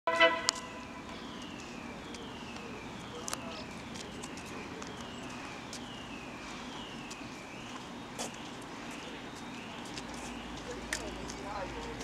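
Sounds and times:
train horn toot: 0:00.1 - 0:01.0.

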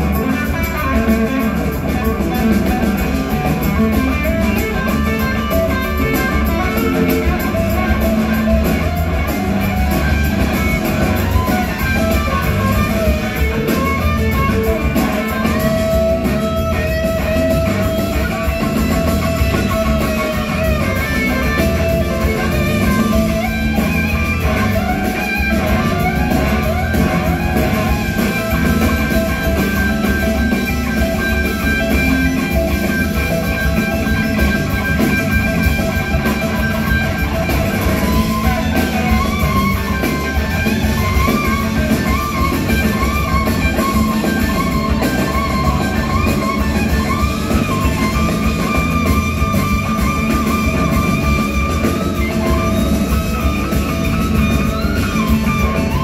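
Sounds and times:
live blues-rock band: 0:00.0 - 0:56.0.

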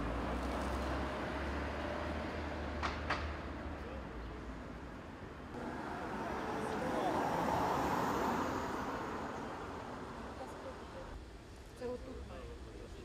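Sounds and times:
low traffic rumble: 0:00.0 - 0:13.0.

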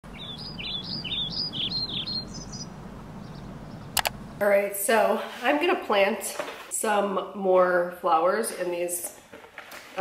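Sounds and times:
songbird chirping: 0:00.0 - 0:04.4
low outdoor rumble: 0:00.1 - 0:04.7
sharp click: 0:03.9 - 0:04.2.

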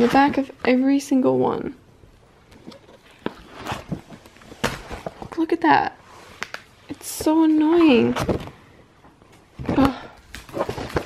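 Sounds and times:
paper pages rustling: 0:10.2 - 0:11.0.

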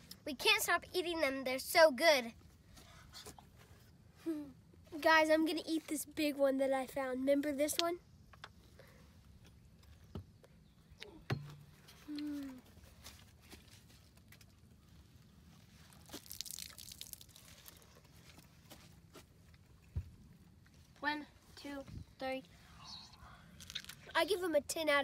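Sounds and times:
person humming: 0:12.1 - 0:12.6.

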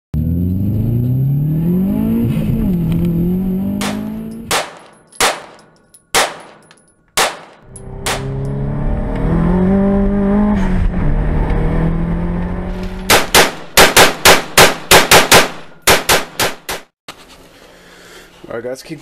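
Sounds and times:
rapid rifle shots: 0:03.8 - 0:05.6, 0:06.2 - 0:06.6, 0:07.2 - 0:08.2, 0:13.1 - 0:16.8
handgun shots: 0:03.8 - 0:08.4, 0:13.1 - 0:16.9.

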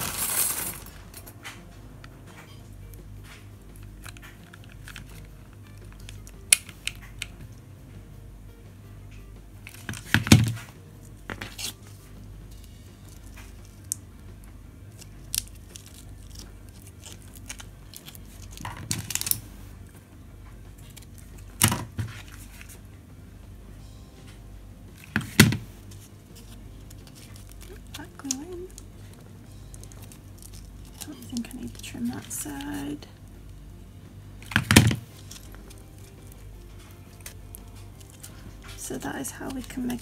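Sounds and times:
fabric rustling: 0:00.0 - 0:01.7.

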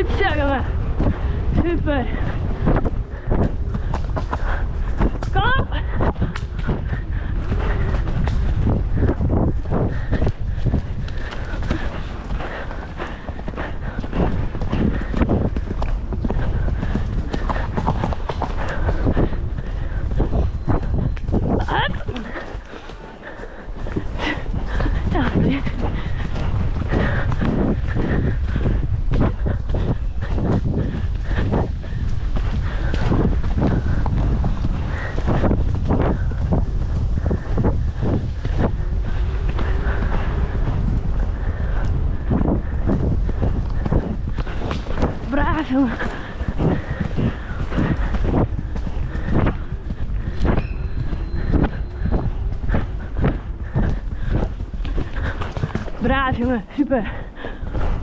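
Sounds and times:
horse hoofbeats on dirt: 0:00.0 - 0:58.0
wind rumble on microphone: 0:00.0 - 0:58.0.

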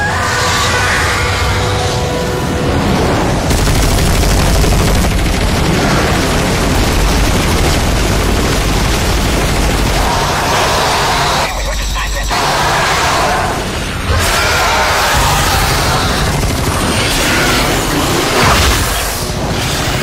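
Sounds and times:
heavy rumble with booms: 0:02.4 - 0:11.1
rapid gunfire: 0:03.5 - 0:12.1, 0:15.1 - 0:20.0.

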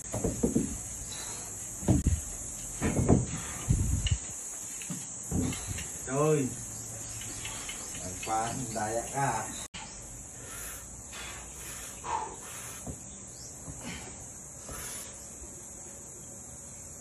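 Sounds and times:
barbell thumps and knocks: 0:00.1 - 0:00.8, 0:02.8 - 0:03.4.

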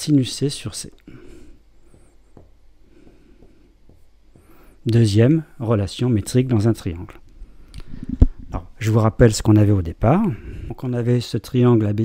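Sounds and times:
marker scratching on whiteboard: 0:01.8 - 0:04.6.

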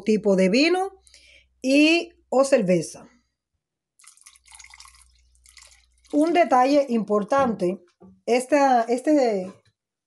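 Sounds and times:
wine pouring into a pot: 0:04.0 - 0:06.9.

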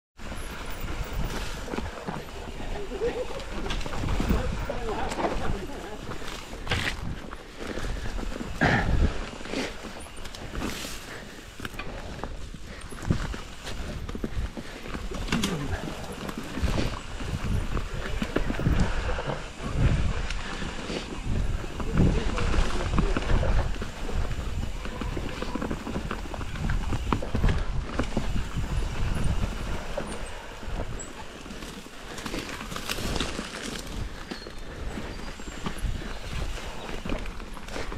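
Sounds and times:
bike knocking and rattling: 0:00.2 - 0:37.9
bike tyres on dirt and leaves: 0:00.2 - 0:37.9.

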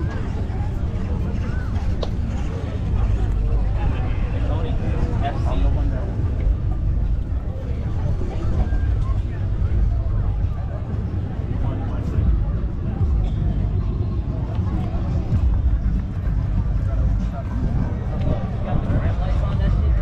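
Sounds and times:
crowd chatter: 0:00.0 - 0:20.0
steady low rumble: 0:00.0 - 0:20.0.

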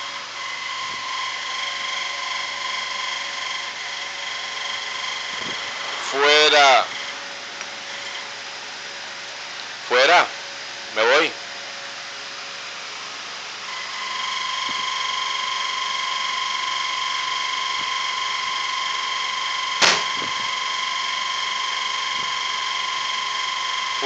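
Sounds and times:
high-pitched machine whine: 0:00.0 - 0:24.0.

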